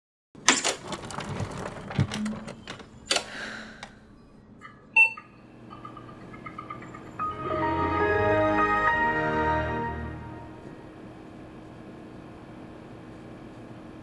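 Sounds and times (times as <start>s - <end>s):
computer clicks and rattles: 0.4s - 3.2s
short computer beep: 5.0s - 5.4s
music: 7.1s - 10.8s.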